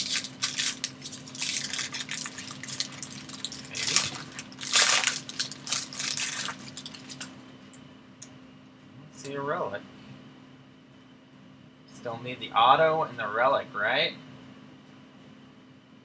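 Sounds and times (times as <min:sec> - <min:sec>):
foil wrapper tearing and crinkling: 0:00.0 - 0:07.3.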